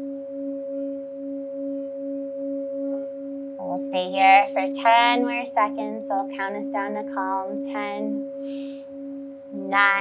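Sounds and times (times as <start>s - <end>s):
singing bowl humming: 0.0s - 10.0s.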